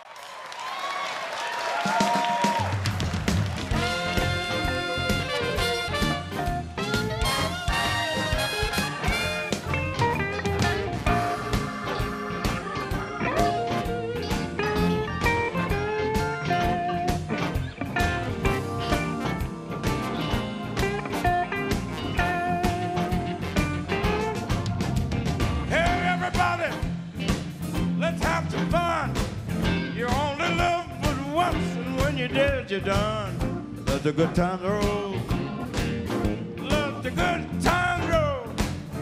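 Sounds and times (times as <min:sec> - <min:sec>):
steady drum beat: 0:01.8 - 0:39.0
blues band playing: 0:01.9 - 0:39.0
electric guitar lead lines: 0:08.4 - 0:25.7.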